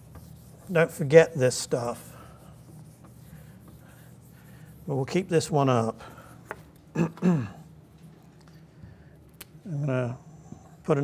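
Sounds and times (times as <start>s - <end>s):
eraser rubbing on whiteboard: 0.0s - 5.5s.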